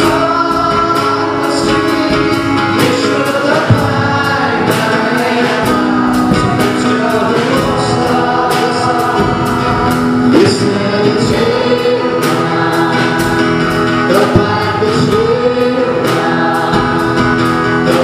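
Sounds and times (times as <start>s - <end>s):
band accompaniment: 0.0s - 18.0s
group singing worship song: 0.0s - 18.0s.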